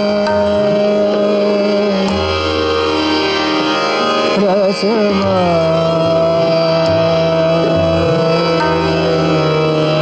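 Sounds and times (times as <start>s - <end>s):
harmonium: 0.0s - 10.0s
steady drone: 0.0s - 10.0s.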